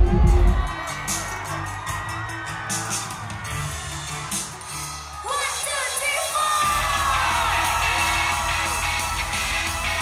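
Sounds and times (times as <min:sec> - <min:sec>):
heavy bass beat: 0:00.0 - 0:01.9, 0:06.6 - 0:10.0
audience cheering: 0:00.0 - 0:10.0
pop music over a sound system: 0:00.0 - 0:10.0.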